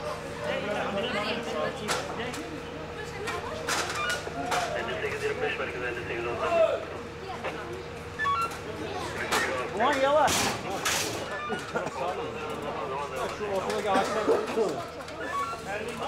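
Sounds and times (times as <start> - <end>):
people calling and talking: 0.0 - 16.0.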